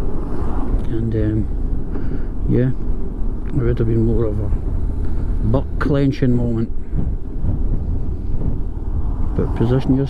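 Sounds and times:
wind buffeting microphone: 0:00.0 - 0:10.0.

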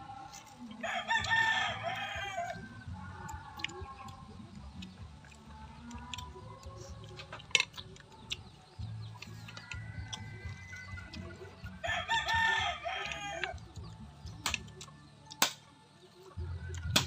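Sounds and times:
rooster crowing: 0:00.8 - 0:02.9, 0:09.3 - 0:13.6.

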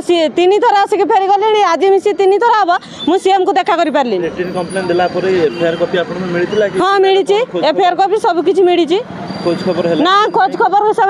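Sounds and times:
woman speaking emphatically: 0:00.0 - 0:04.2, 0:06.8 - 0:09.1, 0:10.0 - 0:11.0.

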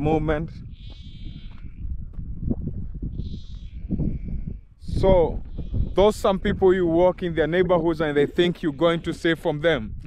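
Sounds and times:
wind buffeting microphone: 0:00.0 - 0:10.0
high quavering animal calls: 0:00.6 - 0:02.1, 0:03.0 - 0:04.8, 0:05.5 - 0:06.1.

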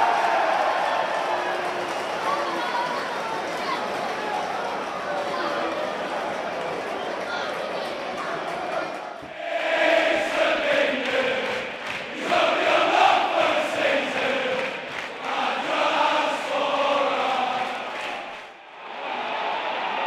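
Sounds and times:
stadium crowd singing and chanting: 0:09.2 - 0:20.0.

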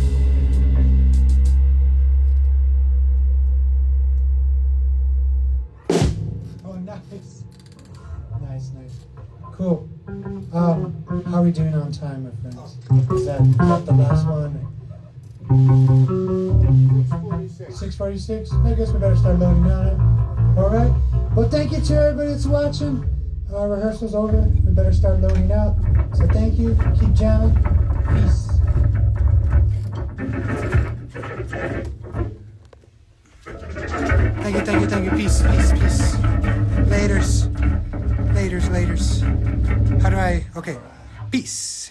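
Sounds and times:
drum kit and cymbals: 0:00.0 - 0:03.4, 0:05.8 - 0:07.5
bass guitar noodling: 0:00.0 - 0:41.9
electric guitar noodling: 0:09.0 - 0:32.7, 0:33.3 - 0:41.4
electric guitar: 0:09.2 - 0:12.1, 0:12.8 - 0:17.6
person speaking: 0:34.0 - 0:41.9.

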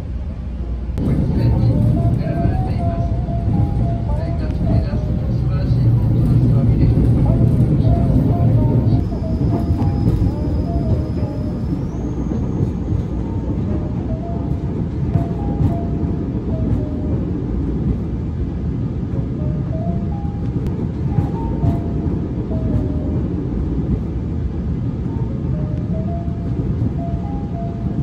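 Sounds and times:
train rumble inside carriage: 0:00.0 - 0:28.0
background music: 0:01.0 - 0:28.0.

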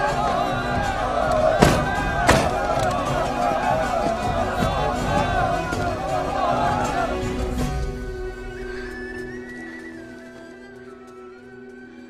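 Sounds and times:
crowd voices overlapping: 0:00.0 - 0:12.0
film soundtrack music: 0:00.0 - 0:12.0.

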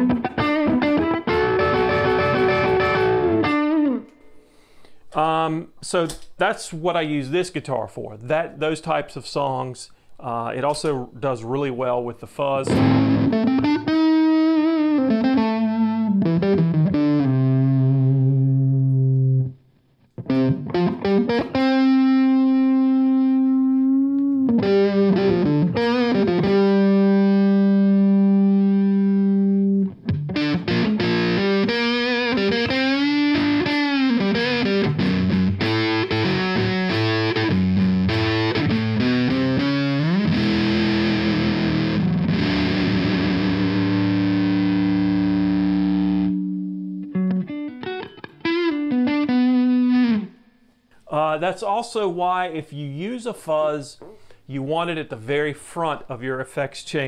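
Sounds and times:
distorted electric guitar: 0:00.0 - 0:04.2, 0:12.7 - 0:50.4.

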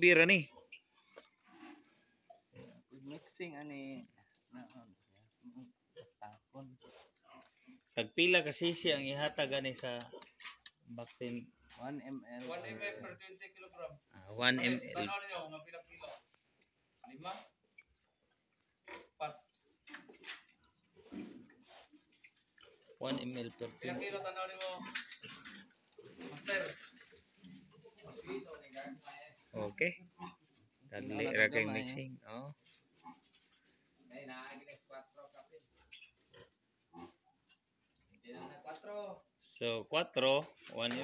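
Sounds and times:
pigs grunting: 0:00.4 - 0:08.0, 0:18.8 - 0:19.5, 0:20.9 - 0:31.9, 0:35.9 - 0:37.6, 0:38.2 - 0:39.3
faint pig grunts: 0:36.2 - 0:37.4.

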